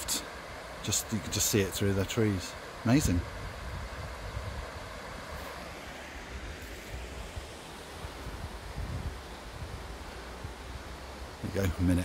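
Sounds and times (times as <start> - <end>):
river rushing over rocks: 0.0 - 12.0
wind buffeting microphone: 2.9 - 5.6, 6.9 - 10.7.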